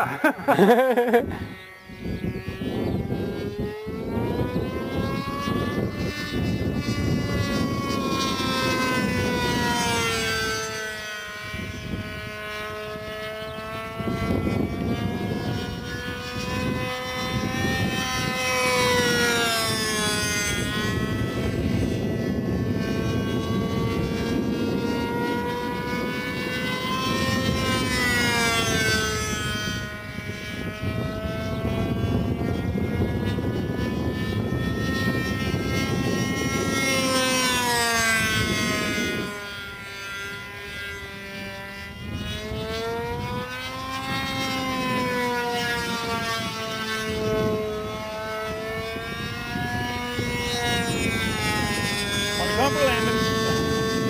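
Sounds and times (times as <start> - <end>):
model plane engine and propeller: 0.0 - 54.0.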